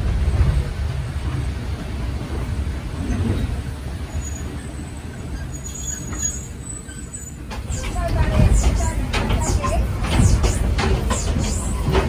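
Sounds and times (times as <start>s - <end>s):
train rumbling slowly: 0.0s - 12.0s
faint high squeal: 4.1s - 7.4s
voices: 7.5s - 12.0s.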